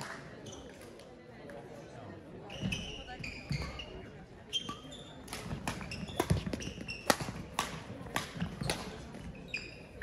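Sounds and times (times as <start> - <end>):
voices in hall: 0.0 - 10.0
court shoes squeaking: 0.4 - 0.9, 2.5 - 10.0.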